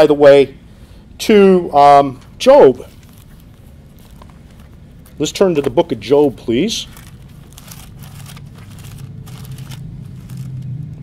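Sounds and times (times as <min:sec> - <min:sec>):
steady low hum: 0:00.0 - 0:11.0
pages turning and rustling: 0:03.0 - 0:11.0.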